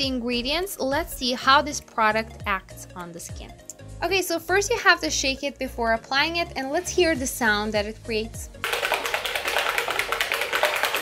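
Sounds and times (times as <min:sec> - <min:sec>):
plastic bottle rattling when shaken: 0:08.6 - 0:11.0.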